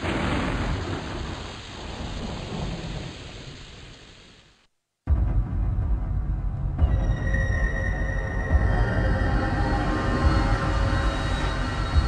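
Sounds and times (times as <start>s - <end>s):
rolling thunder rumble: 0.0s - 4.0s
rain hissing: 0.0s - 5.0s, 8.0s - 12.0s.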